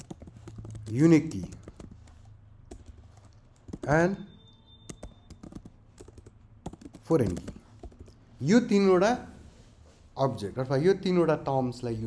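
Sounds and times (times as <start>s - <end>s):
computer keyboard typing: 0.0s - 4.2s, 4.8s - 8.2s.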